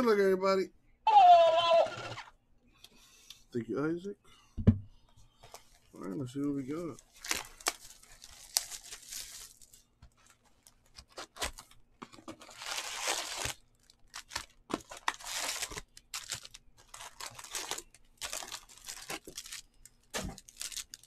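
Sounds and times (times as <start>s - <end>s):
card packs crinkling: 5.4s - 21.0s
wrapping tearing: 6.4s - 21.0s.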